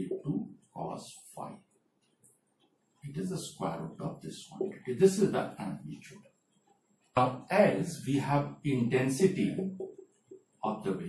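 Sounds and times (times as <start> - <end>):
man speaking: 0.0 - 1.6, 3.0 - 6.2, 7.2 - 9.8, 10.6 - 11.0.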